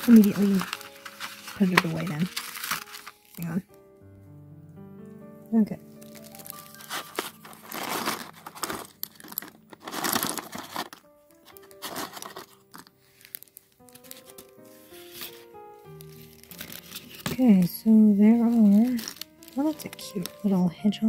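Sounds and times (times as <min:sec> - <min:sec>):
paper envelope crinkling: 0:00.0 - 0:03.6, 0:05.8 - 0:20.6.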